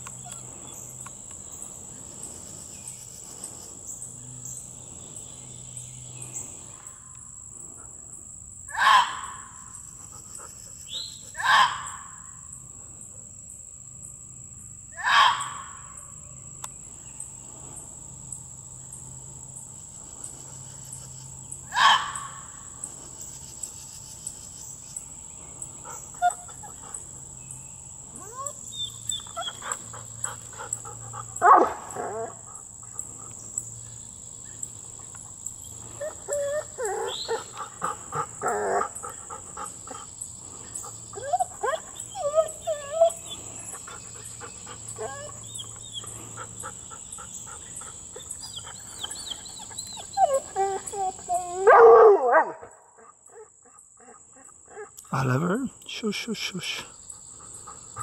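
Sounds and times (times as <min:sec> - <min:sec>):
high insect trill: 0:00.0 - 0:58.0
dog whining and barking: 0:28.1 - 0:30.0, 0:36.0 - 0:37.6, 0:41.1 - 0:43.8, 0:44.9 - 0:46.5, 0:48.2 - 0:54.9.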